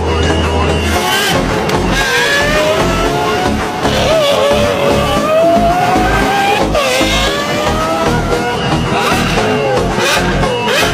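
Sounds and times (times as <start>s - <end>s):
music with pulsing bass: 0.0s - 10.9s
sports car engine accelerating: 0.2s - 10.9s.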